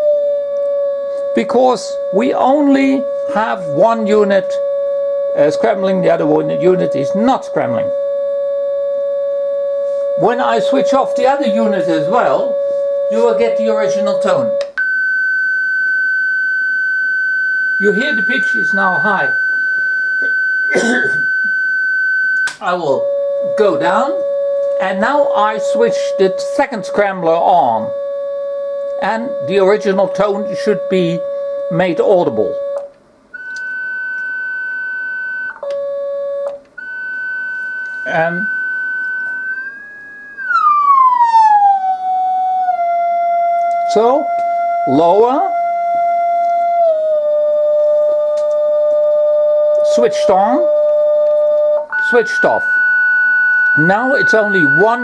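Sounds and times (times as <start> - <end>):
high-pitched sine test tone: 0.0 - 55.0.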